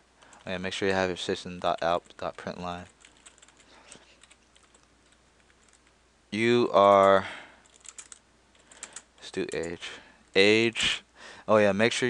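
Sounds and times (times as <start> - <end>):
typing on a computer keyboard: 1.7 - 6.0, 6.9 - 9.8.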